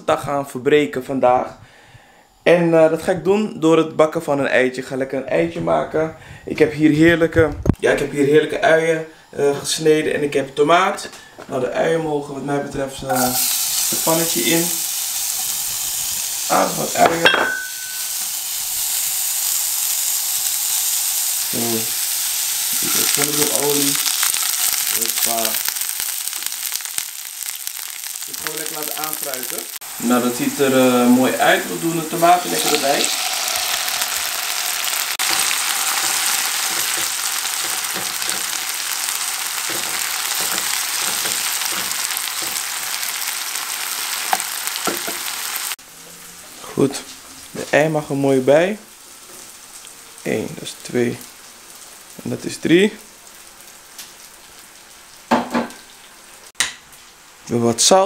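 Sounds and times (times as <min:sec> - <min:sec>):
onions sizzling in hot oil: 0:13.1 - 0:57.3.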